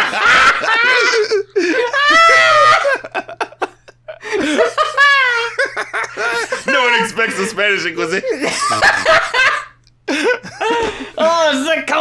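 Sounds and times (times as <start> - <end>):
people laughing hard: 0.0 - 11.4.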